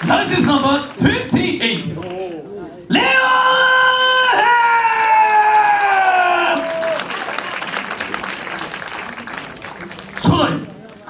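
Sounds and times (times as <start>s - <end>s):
crowd applauding and cheering: 4.3s - 11.0s.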